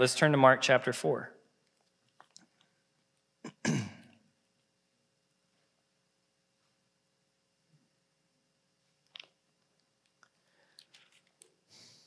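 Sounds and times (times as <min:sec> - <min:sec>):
man clearing his throat: 0:03.4 - 0:04.2.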